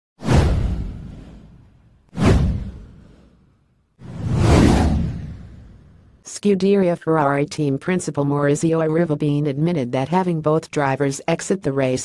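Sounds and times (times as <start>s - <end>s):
whoosh sound effects: 2.2s - 6.1s.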